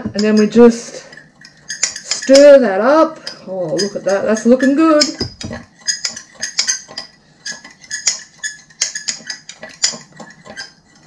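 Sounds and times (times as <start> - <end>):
fork clinking against ceramic bowl: 0.0 - 11.0.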